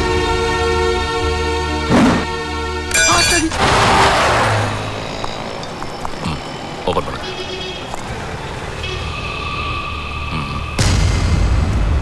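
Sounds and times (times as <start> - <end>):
car horns: 2.9 - 10.9
vehicle rushing past: 3.6 - 5.2.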